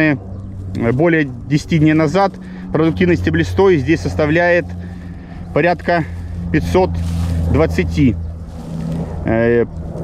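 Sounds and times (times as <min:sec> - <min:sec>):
low motor drone: 0:00.0 - 0:10.0.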